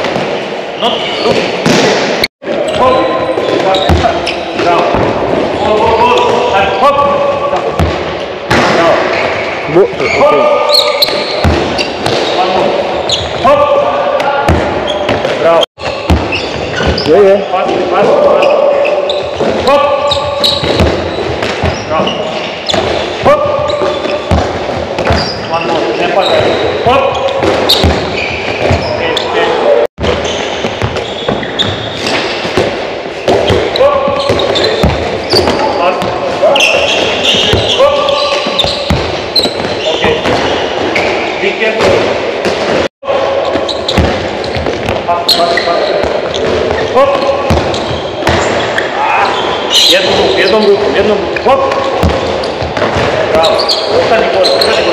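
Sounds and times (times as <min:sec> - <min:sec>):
voices: 0:02.4 - 0:24.4, 0:25.0 - 0:29.9, 0:33.2 - 0:42.1, 0:45.0 - 0:54.9
ball bouncing on wooden floor: 0:36.8 - 0:41.1, 0:43.5 - 0:45.1, 0:51.7 - 0:53.2.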